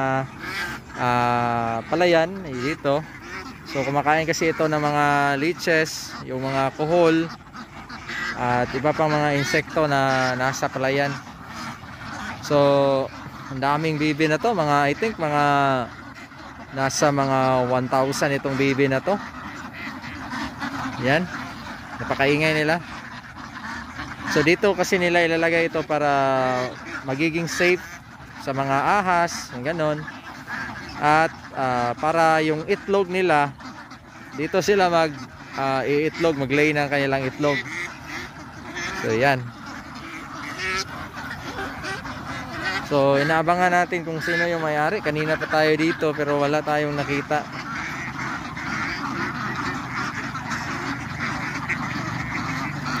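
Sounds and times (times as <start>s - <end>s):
ducks quacking: 0.0s - 53.0s.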